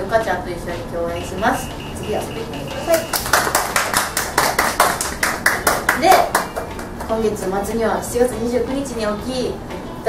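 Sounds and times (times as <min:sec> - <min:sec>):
people clapping: 0:02.6 - 0:07.6.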